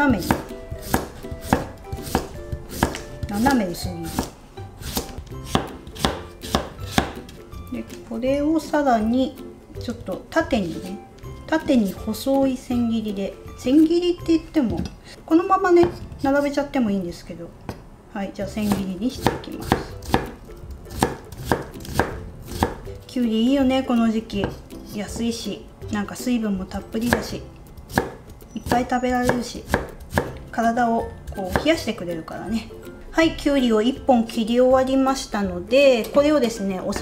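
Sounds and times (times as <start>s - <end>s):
knife cutting on wooden board: 0.2s - 7.4s, 18.6s - 22.8s, 27.1s - 30.4s
knife slicing on wooden board: 0.3s - 7.3s
knife knocking on board: 5.0s - 7.2s.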